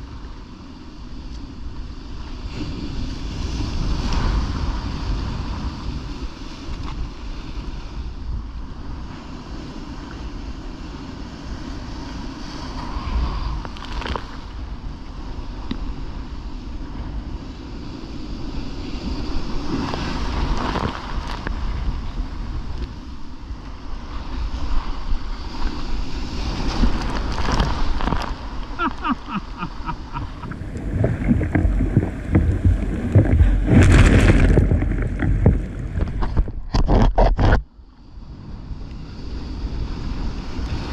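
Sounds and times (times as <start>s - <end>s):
wind buffeting microphone: 0.0s - 37.6s
rough sea breaking: 0.0s - 40.9s
water slapping against kayak hull: 26.6s - 37.6s.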